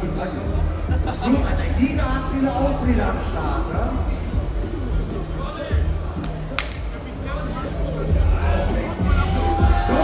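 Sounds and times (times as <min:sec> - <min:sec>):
background music with bass line: 0:00.0 - 0:10.0
faint voices in a hall: 0:00.0 - 0:10.0.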